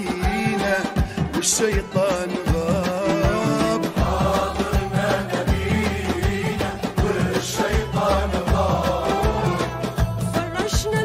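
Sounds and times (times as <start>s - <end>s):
men singing in chorus: 0.0s - 9.9s.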